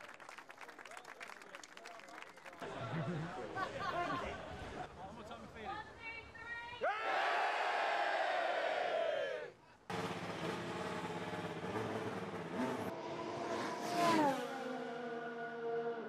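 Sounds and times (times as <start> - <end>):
race car engine passing: 9.9 - 16.0.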